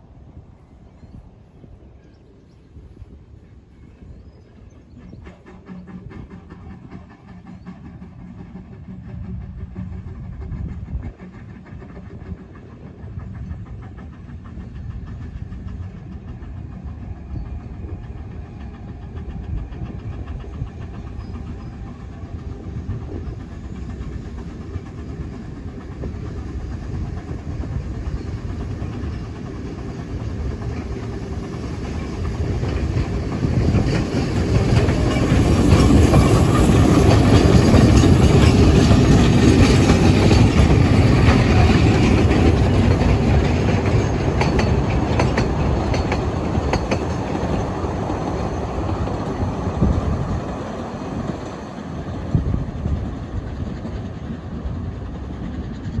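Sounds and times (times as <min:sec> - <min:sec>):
steam locomotive passing: 0:00.0 - 0:56.0.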